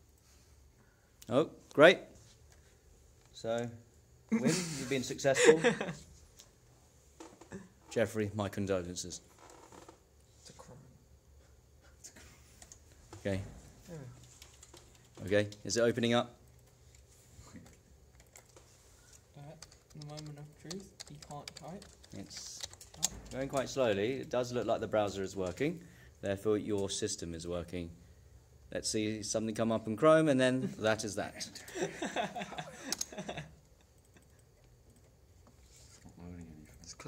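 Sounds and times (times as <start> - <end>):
person speaking: 4.4 - 6.0, 19.3 - 27.6
keyboard typing clicks: 19.6 - 23.7.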